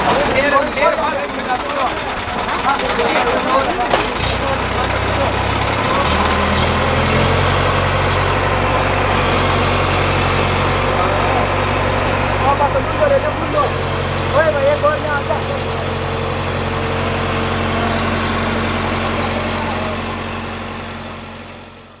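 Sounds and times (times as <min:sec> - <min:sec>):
men's voices: 0:00.0 - 0:07.3, 0:09.8 - 0:20.4
crane diesel engine running: 0:00.0 - 0:22.0.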